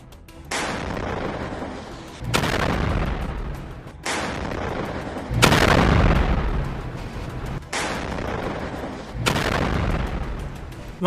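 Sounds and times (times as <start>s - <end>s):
rocket blast with rushing noise: 0.5s - 10.5s.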